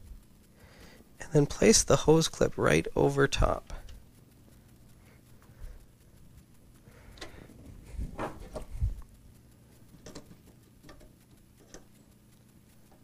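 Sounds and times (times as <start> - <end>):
faint ticks: 0.0 - 13.0
small clicks: 0.0 - 13.0
rustling: 3.8 - 13.0.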